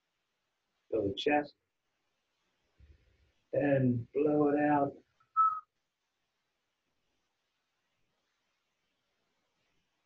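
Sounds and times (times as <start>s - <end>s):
person whistling breath: 5.4s - 5.6s.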